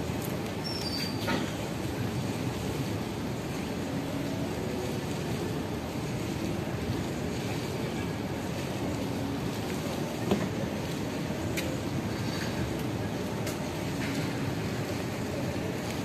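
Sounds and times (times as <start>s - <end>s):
distant city traffic rumble: 0.0s - 16.0s.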